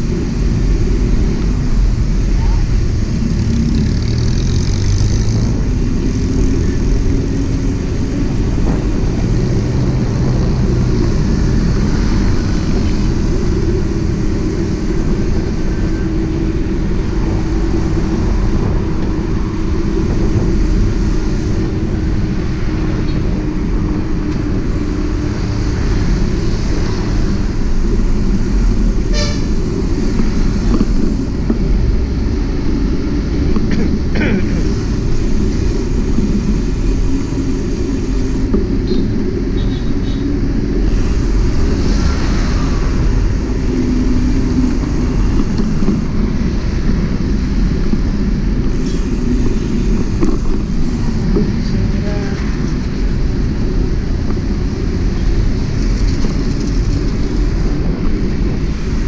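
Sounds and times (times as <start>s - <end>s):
motorcycle engine running: 0.0s - 15.9s
wind rushing over microphone: 0.0s - 59.0s.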